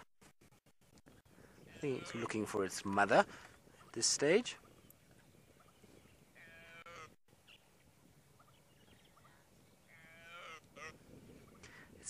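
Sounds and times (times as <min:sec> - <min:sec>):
young antelope calling: 0:01.4 - 0:02.5, 0:04.6 - 0:07.8, 0:08.4 - 0:11.8.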